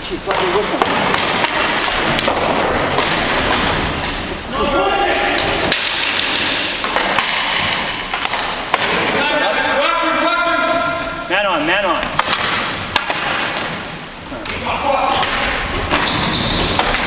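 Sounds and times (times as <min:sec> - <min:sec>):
background din in a hall: 0:00.0 - 0:17.0
sticks and ball knocking: 0:05.4 - 0:09.1, 0:12.0 - 0:13.8.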